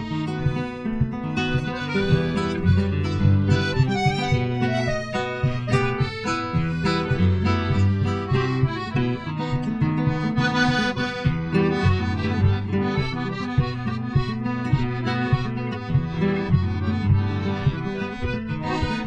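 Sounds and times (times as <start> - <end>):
accordion chords: 0.0 - 19.0
plucked classical guitar: 0.0 - 19.0.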